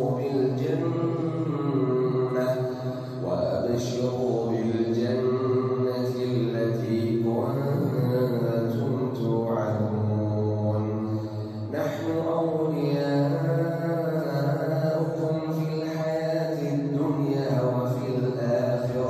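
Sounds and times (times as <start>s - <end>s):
man reciting melodically: 0.0s - 19.0s.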